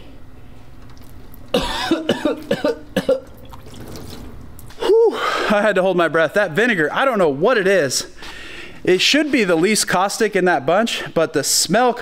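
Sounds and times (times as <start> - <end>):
man coughing laugh: 1.5 - 3.3.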